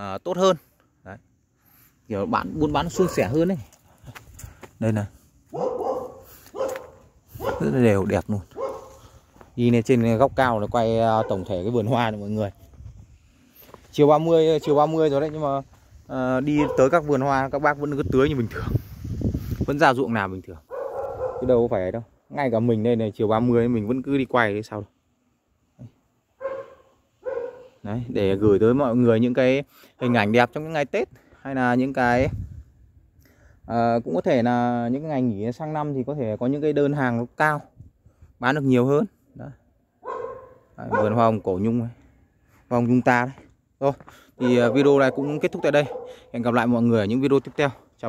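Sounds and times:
dog barking: 0:02.9 - 0:03.4, 0:05.5 - 0:07.8, 0:08.5 - 0:09.1, 0:11.1 - 0:11.6, 0:16.5 - 0:17.0, 0:20.7 - 0:21.6, 0:26.4 - 0:27.8, 0:30.0 - 0:30.4, 0:40.0 - 0:41.4, 0:44.4 - 0:46.3.

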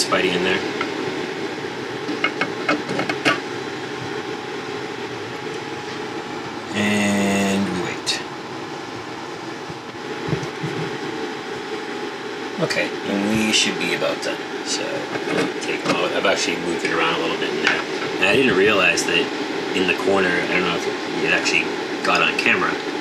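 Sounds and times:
fan mechanical hum: 0:00.0 - 0:23.0
loud buzzing tone: 0:00.0 - 0:23.0.

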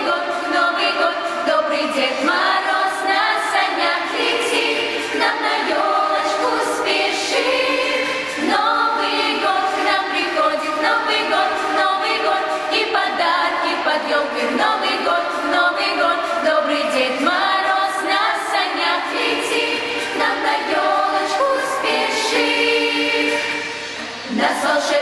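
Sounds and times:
girls' choir singing: 0:00.0 - 0:25.0.

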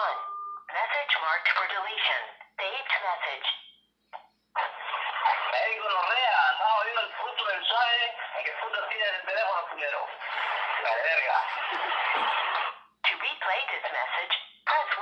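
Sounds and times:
person speaking through phone speaker: 0:00.0 - 0:03.6, 0:04.6 - 0:15.0.

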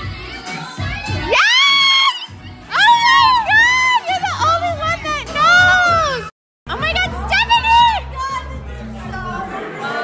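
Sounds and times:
woman shrieking excitedly: 0:01.3 - 0:04.2
crowd noise: 0:02.8 - 0:10.0.

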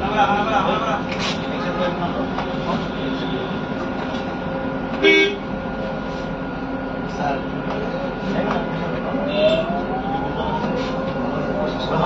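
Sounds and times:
bus engine and road drone: 0:00.0 - 0:12.0
faint constant hum: 0:00.0 - 0:12.0.

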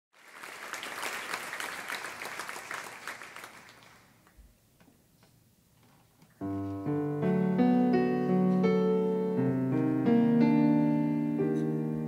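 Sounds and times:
audience applauding: 0:00.1 - 0:04.4.

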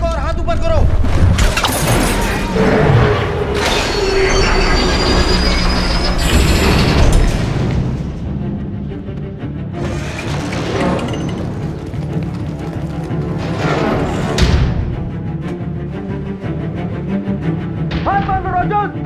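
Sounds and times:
dramatic orchestral music: 0:00.1 - 0:19.0
high metallic screech: 0:01.9 - 0:07.2
grinding rush: 0:09.8 - 0:15.4.

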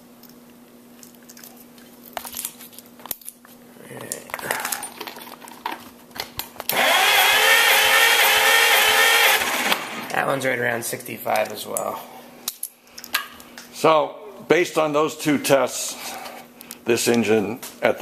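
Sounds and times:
clicks and rustles of handling: 0:00.2 - 0:06.7
engine cranking on starter: 0:06.7 - 0:10.0.

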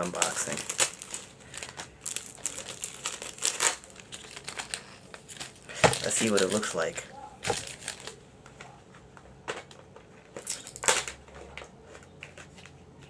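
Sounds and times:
packaging crinkling and clicking: 0:00.0 - 0:08.2.

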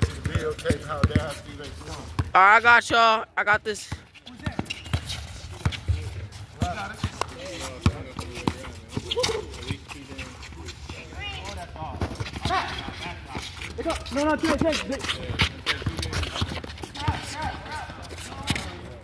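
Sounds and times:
basketball bouncing: 0:00.0 - 0:01.4, 0:02.1 - 0:03.0, 0:14.4 - 0:18.8
footsteps on court: 0:03.9 - 0:19.0.

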